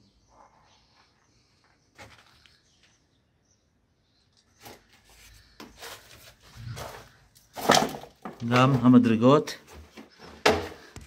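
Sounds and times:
footsteps on debris: 1.6 - 2.9.

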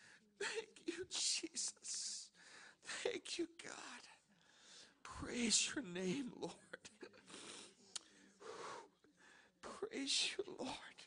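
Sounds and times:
faint breathing: 0.0 - 0.6, 2.3 - 3.0, 4.3 - 5.0, 7.2 - 9.6.

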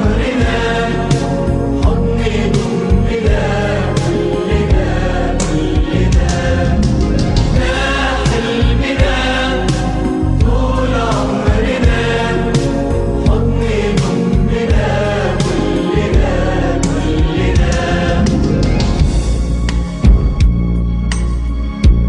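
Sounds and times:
group singing pop chorus: 0.0 - 19.3
orchestral backing with beat: 0.0 - 22.0.

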